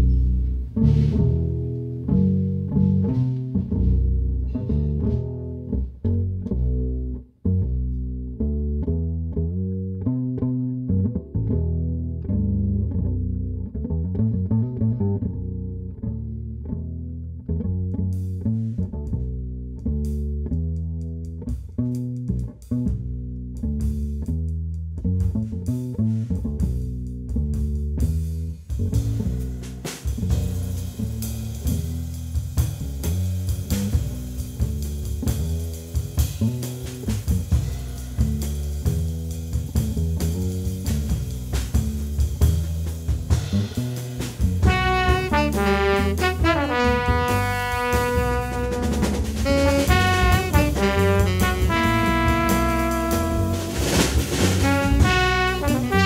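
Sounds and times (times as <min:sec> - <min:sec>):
electric bass guitar melody: 0:00.0 - 0:56.0.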